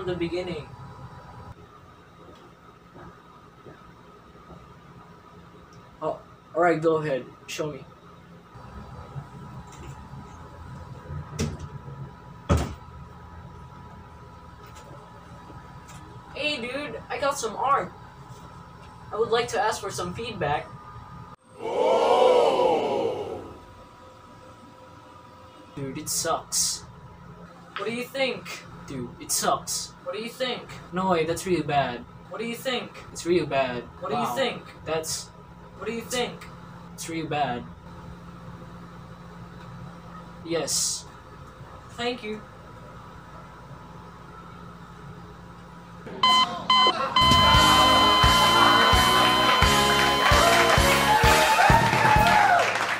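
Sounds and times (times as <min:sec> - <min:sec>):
drawn-out vocal sound: 0:21.4 - 0:23.8
electronic beep: 0:46.2 - 0:50.5
music with a regular beat: 0:47.2 - 0:51.8.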